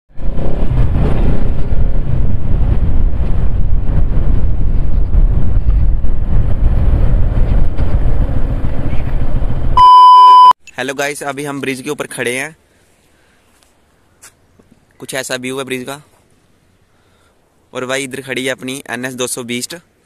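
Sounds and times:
wind buffeting microphone: 0.1 - 9.8
steady test tone beep: 9.8 - 10.6.

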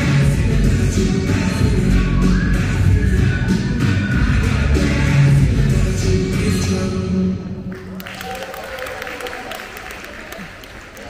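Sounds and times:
dance music: 0.0 - 7.7
audience applause: 7.7 - 11.0.

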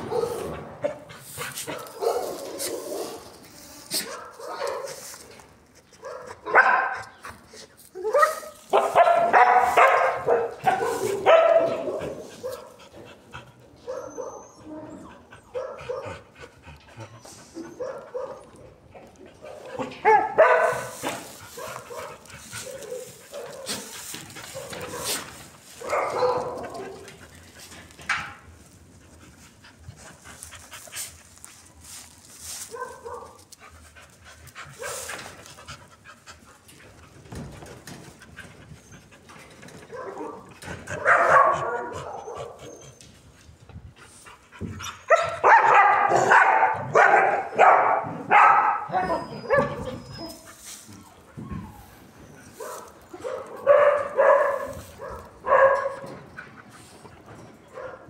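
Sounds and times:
dog barking and crying: 0.0 - 5.1, 6.0 - 7.2, 8.0 - 12.8, 13.6 - 16.2, 17.0 - 27.2, 32.6 - 33.4, 39.8 - 43.0, 44.8 - 56.6, 57.7 - 58.0
dog panting: 10.0 - 14.4, 15.1 - 18.6, 33.0 - 37.3, 43.9 - 45.2.

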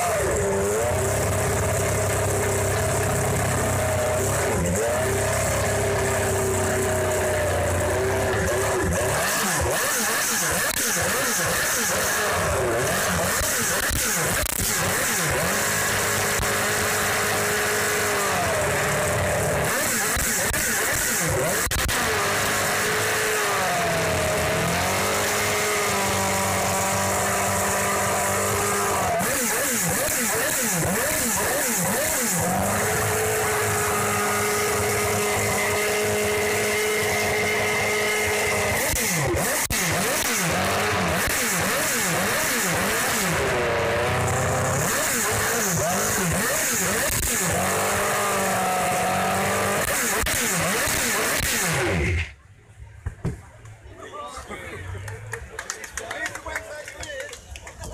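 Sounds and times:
racing car engine revving: 0.0 - 52.4.

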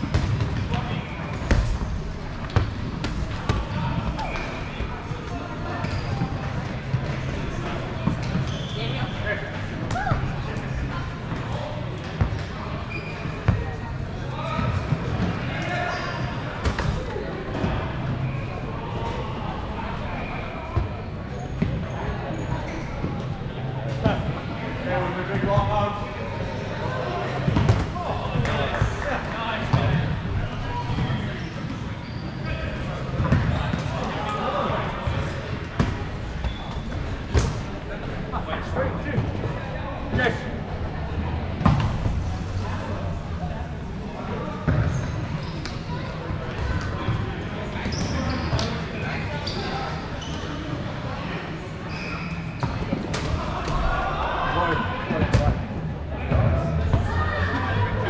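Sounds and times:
dodgeballs thudding: 0.0 - 5.0, 27.4 - 29.1, 41.5 - 43.8.

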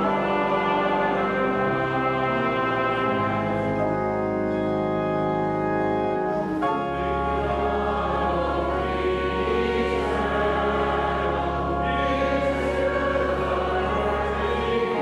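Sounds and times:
congregation singing: 0.0 - 5.2, 5.8 - 15.0
church organ playing hymn: 0.0 - 15.0.

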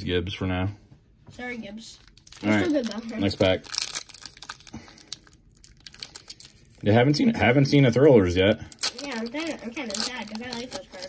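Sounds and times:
foil pack crinkling: 2.0 - 11.0.

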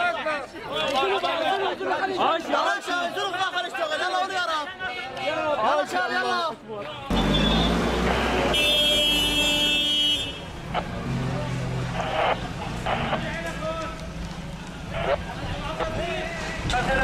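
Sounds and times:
vehicle horn blaring: 7.1 - 10.6.

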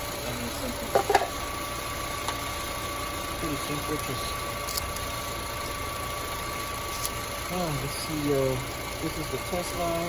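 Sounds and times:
car engine idling: 0.0 - 10.0
engine clatter: 0.0 - 10.0.

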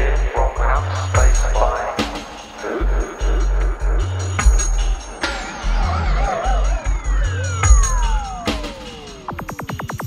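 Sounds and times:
psytrance music: 0.0 - 10.0.

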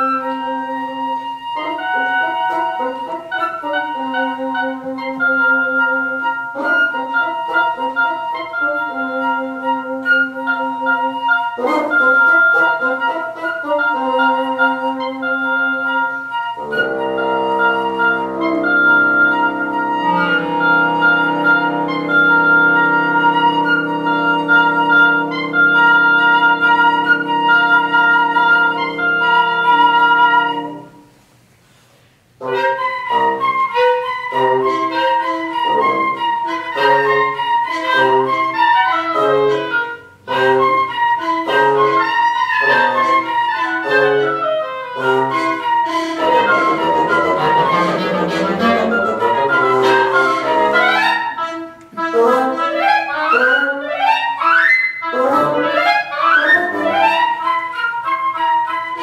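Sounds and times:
woodwind quintet chamber music: 0.0 - 59.0.

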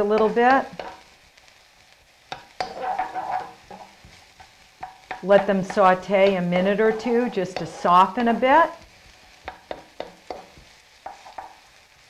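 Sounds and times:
wooden spoon knocking on pan: 0.0 - 1.0, 2.3 - 8.4, 9.4 - 11.6
spoon scraping pan: 0.0 - 1.5, 2.2 - 11.9
onions sizzling in oil: 0.0 - 12.0.

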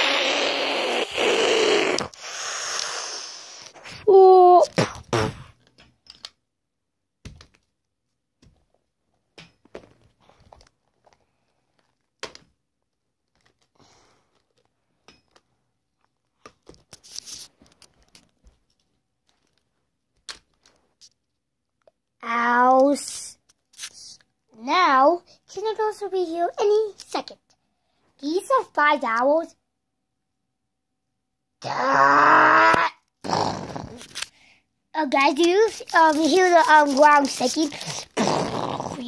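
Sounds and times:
child making drawn-out vocal sound: 0.0 - 4.8, 31.6 - 34.1, 35.6 - 39.0
plastic toys clicking and rustling: 34.0 - 34.4, 35.0 - 38.2.

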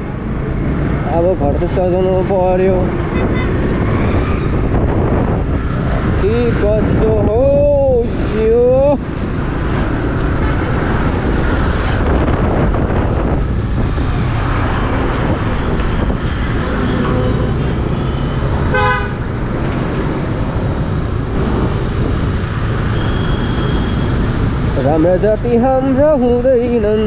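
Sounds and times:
road and wind noise: 0.0 - 27.0
vehicle horn toot: 18.1 - 19.2.

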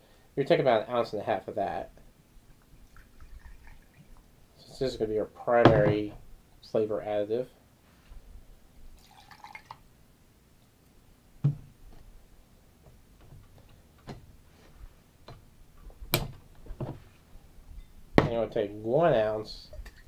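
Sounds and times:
liquid pouring over ice: 2.8 - 4.2, 9.0 - 9.8.

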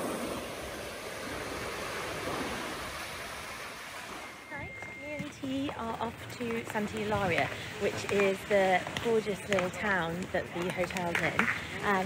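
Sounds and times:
small waves washing on shore: 0.0 - 4.5.

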